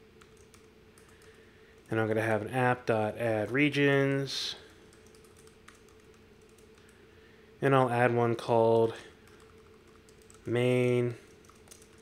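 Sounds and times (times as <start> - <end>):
low steady hum: 0.0 - 12.0
keyboard typing: 0.2 - 1.9, 4.9 - 7.0, 9.2 - 12.0.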